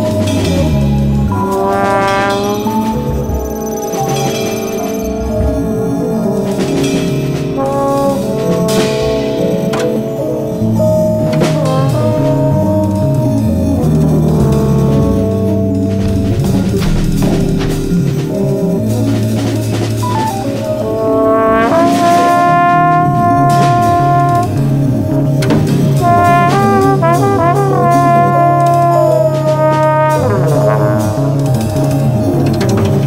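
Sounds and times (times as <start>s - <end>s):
drums: 0.0s - 33.0s
free jazz music: 0.0s - 33.0s
moving bass: 0.0s - 33.0s
trombone-like brass lines: 0.0s - 33.0s.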